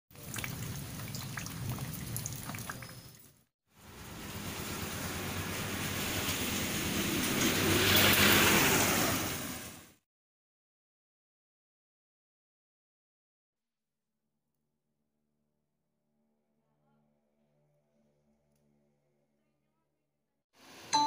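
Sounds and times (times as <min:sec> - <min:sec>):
water drips: 0:00.1 - 0:03.4
rain on wet ground: 0:00.2 - 0:03.1, 0:03.8 - 0:09.8.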